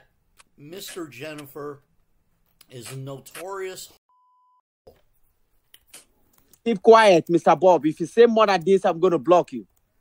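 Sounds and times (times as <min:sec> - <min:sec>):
censor beep: 0:04.1 - 0:04.6.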